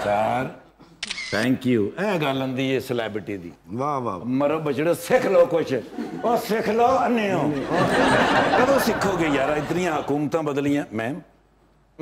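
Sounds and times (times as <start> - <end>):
man speaking: 8.4 - 11.4.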